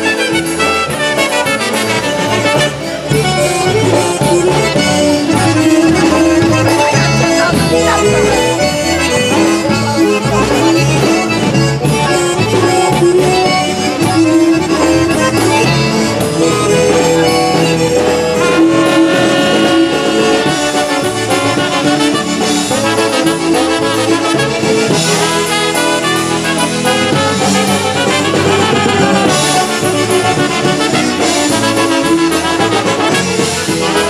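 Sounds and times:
accordion and concertina melody: 0.0 - 34.0
brass: 0.0 - 34.0
polka band playing: 0.0 - 34.0.

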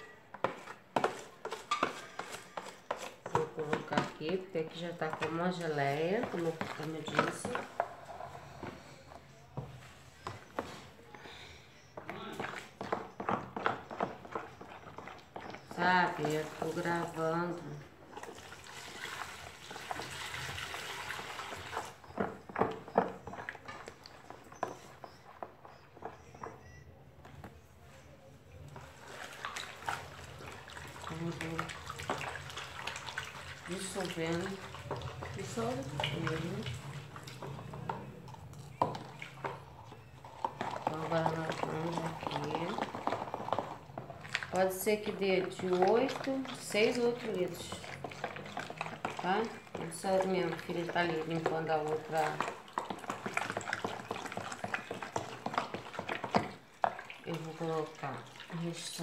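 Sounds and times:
liquid soap sloshing in basin: 0.0 - 26.8, 27.9 - 59.0.

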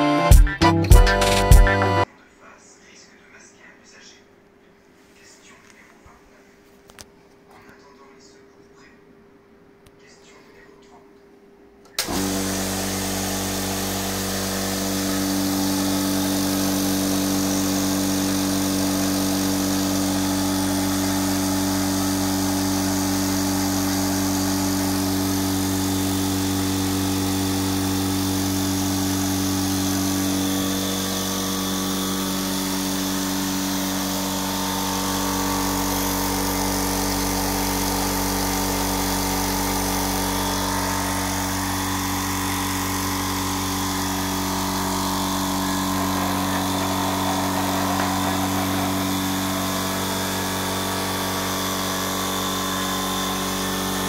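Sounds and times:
air compressor running: 11.9 - 54.0.

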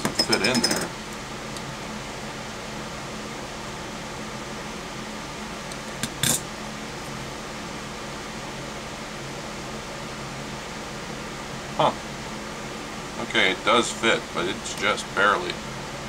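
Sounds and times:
fan-like room hum: 0.0 - 16.0.

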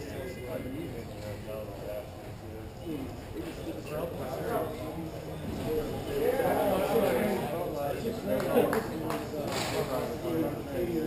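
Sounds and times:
indistinct voices in echoing hall: 0.0 - 11.0.

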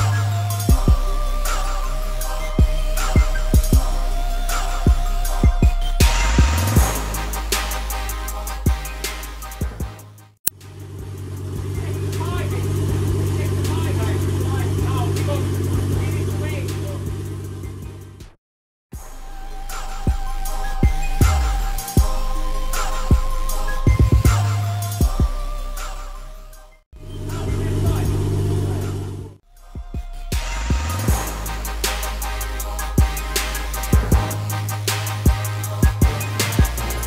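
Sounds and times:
car engine idling: 10.6 - 18.3, 27.0 - 29.6
people's voices: 11.8 - 17.1, 27.1 - 29.4.

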